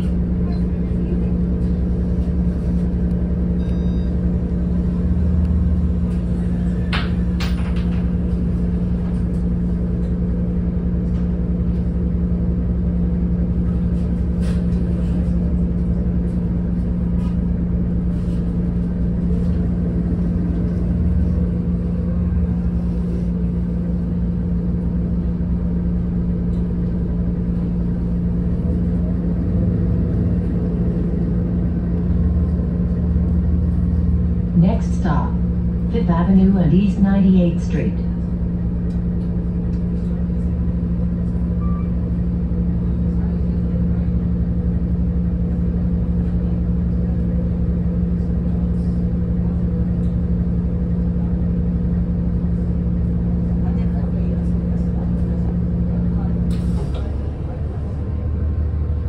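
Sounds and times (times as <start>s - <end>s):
bus drivetrain drone: 0.0s - 59.0s.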